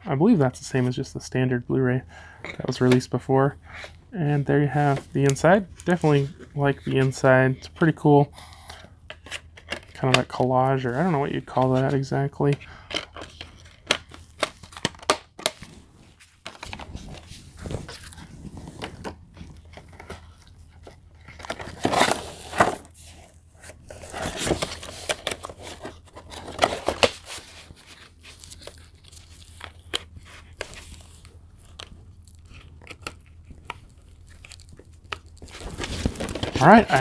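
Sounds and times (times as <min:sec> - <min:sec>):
plastic rustling and crinkling: 0:09.2 - 0:37.0
plastic disc case clicks: 0:12.9 - 0:15.7
plastic wrapping crinkling: 0:23.6 - 0:37.0.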